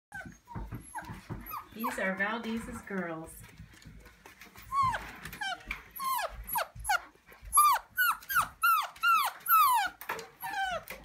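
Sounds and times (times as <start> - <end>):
puppies whimpering: 0.1 - 2.3, 4.4 - 11.0.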